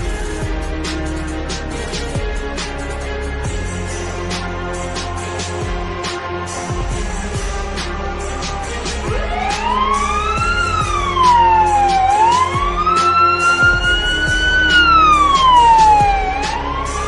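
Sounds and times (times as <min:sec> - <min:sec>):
background music with steady beat: 0:00.0 - 0:17.0
police siren wailing: 0:06.9 - 0:17.0.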